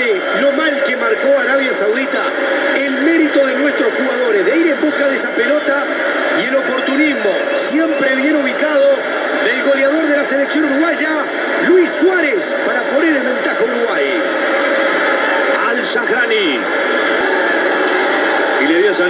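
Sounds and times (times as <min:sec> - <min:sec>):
commentator talking: 0:00.0 - 0:14.4, 0:15.4 - 0:16.8, 0:18.6 - 0:19.0
stadium crowd noise: 0:00.0 - 0:19.0.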